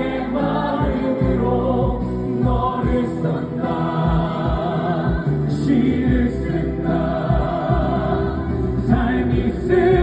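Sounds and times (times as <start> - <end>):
amplified backing music: 0.0 - 10.0
man singing into microphone: 8.9 - 10.0.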